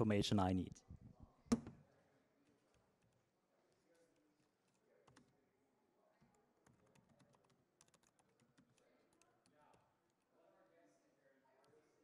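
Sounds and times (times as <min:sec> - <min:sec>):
typing on laptop keyboard: 0:04.9 - 0:05.4, 0:06.2 - 0:10.2.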